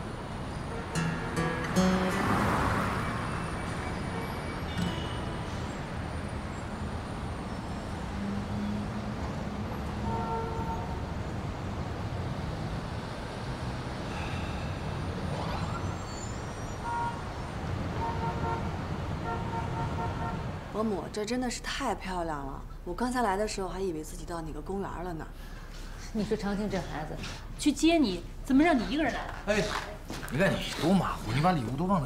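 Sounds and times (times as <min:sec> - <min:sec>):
car passing: 0:00.0 - 0:32.0
road traffic rumble: 0:00.0 - 0:32.0.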